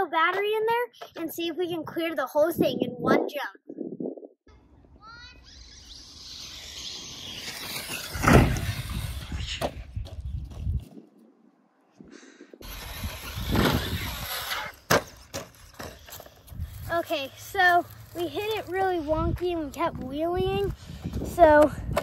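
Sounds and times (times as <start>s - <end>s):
electric motor whining: 5.4s - 9.7s, 12.6s - 14.9s.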